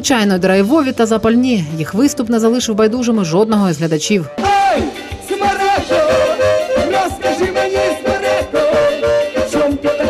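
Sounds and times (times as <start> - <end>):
accordion chords: 0.0 - 10.0
drums: 3.7 - 10.0
electric guitars: 4.3 - 10.0
man singing: 4.4 - 10.0.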